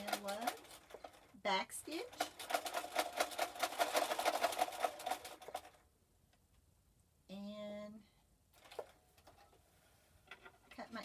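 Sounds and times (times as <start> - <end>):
electric sewing machine stitching: 1.9 - 5.8.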